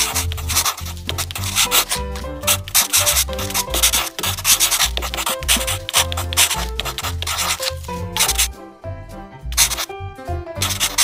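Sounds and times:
marker scratching on paper: 0.0 - 8.5, 9.6 - 9.9, 10.6 - 11.0
background music with bass line: 0.0 - 11.0.

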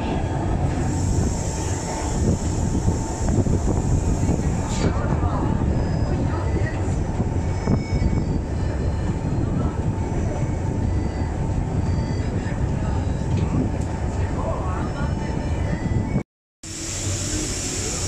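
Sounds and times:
railway carriage low rumble: 0.0 - 18.0.

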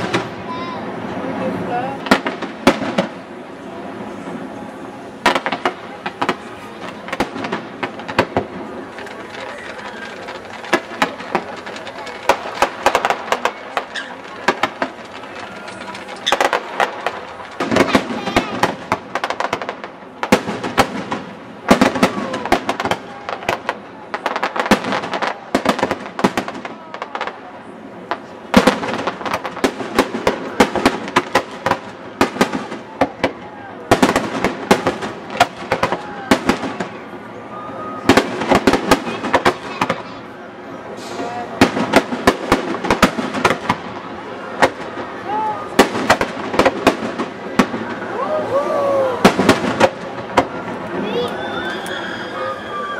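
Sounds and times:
fireworks bursting with bangs: 0.0 - 51.2.

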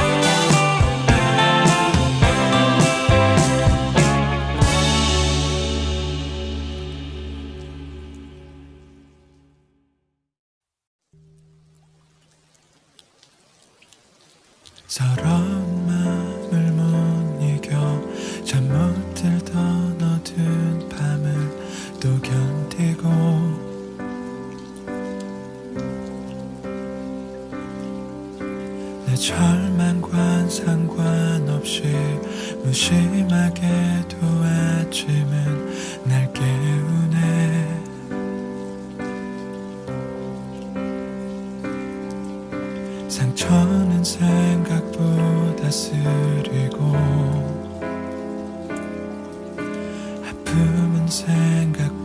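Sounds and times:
rain hiss: 0.0 - 9.4, 11.2 - 52.0
slow ballad chords: 0.0 - 9.5, 15.0 - 52.0
slow instrumental music: 0.0 - 9.8, 15.0 - 52.0.

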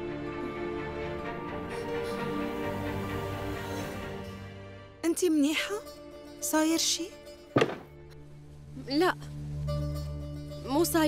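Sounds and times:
low music drone: 0.0 - 5.0.

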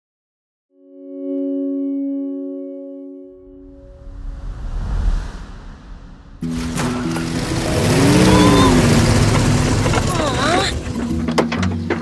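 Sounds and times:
small car engine running: 6.4 - 11.7.

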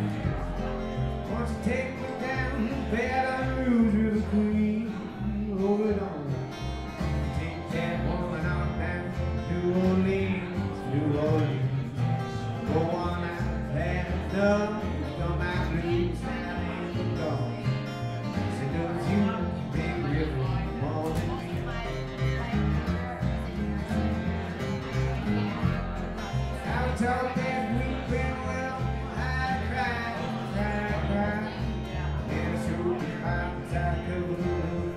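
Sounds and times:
country band playing: 0.0 - 34.9
guitar: 0.0 - 34.9
person singing: 26.5 - 34.9.

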